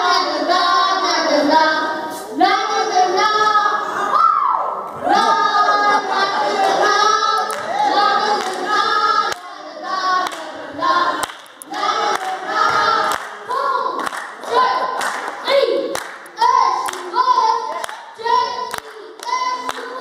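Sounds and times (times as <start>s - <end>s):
hand claps keeping a beat: 9.3s - 9.6s, 10.2s - 17.1s, 17.7s - 20.0s.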